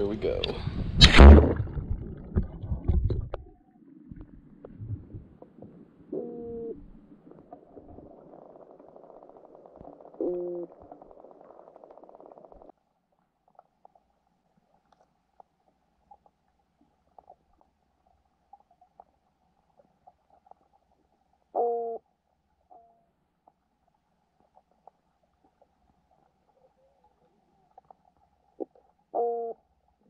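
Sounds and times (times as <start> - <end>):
underwater rumbling and knocking: 0.6 - 12.7
camera splashing into water: 1.0 - 3.4.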